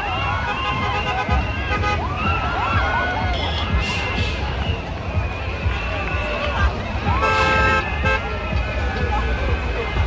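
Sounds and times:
crowd chatter and shouts: 0:00.0 - 0:10.0
loud music with heavy bass: 0:00.0 - 0:10.0
vehicle horn blast: 0:07.2 - 0:08.2.

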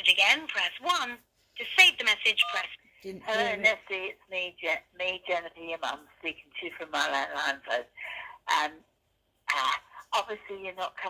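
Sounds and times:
woman's voice through phone speaker: 0:00.0 - 0:08.8, 0:09.5 - 0:11.0.

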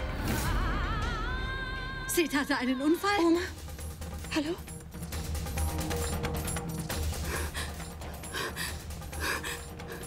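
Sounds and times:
dramatic music drone: 0:03.5 - 0:10.0.

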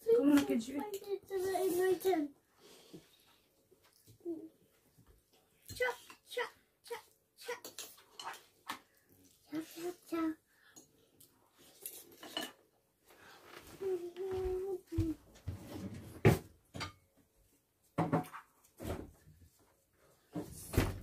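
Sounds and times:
cutlery clinking on plates: 0:07.6 - 0:08.5, 0:11.6 - 0:12.7, 0:16.7 - 0:17.1.

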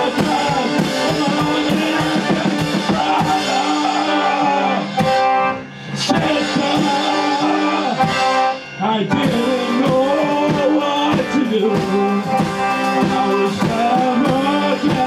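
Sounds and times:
accordion chords: 0:00.0 - 0:15.0
drums and cymbals: 0:00.0 - 0:15.0.

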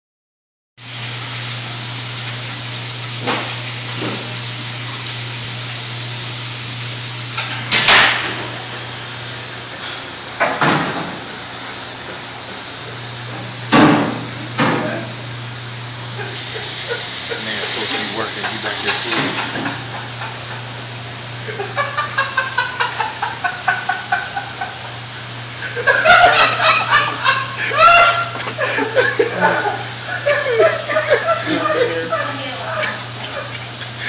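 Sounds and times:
machine hum with high whine: 0:00.8 - 0:34.0.

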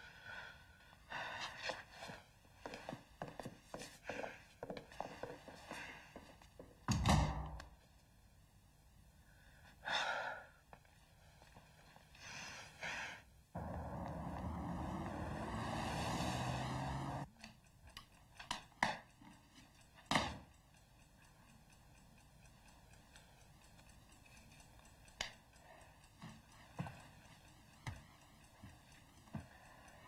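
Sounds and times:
street traffic: 0:13.6 - 0:17.3
vehicle engine running: 0:13.6 - 0:17.3.

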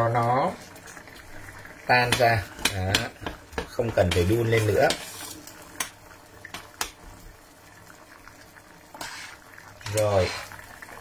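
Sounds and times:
liquid bubbling in pots: 0:00.0 - 0:11.0.

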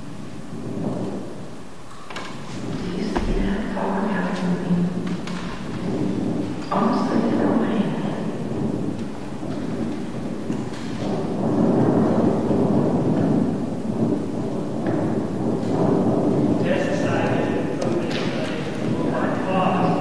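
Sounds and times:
low rumbling soundtrack over loudspeakers: 0:00.0 - 0:20.0.

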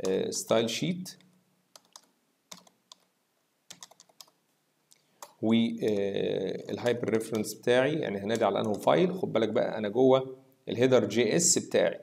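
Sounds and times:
faint computer keyboard typing: 0:00.0 - 0:03.1, 0:03.7 - 0:04.4, 0:05.0 - 0:07.6, 0:08.3 - 0:09.0.

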